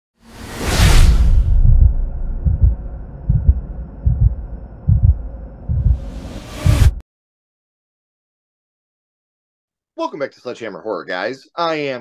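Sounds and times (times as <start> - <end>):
whoosh: 0.2 - 7.0
heartbeat-like double thumps: 1.2 - 7.0.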